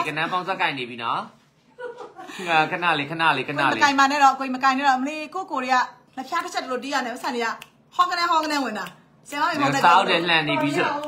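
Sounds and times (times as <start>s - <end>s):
people talking: 2.5s - 11.0s.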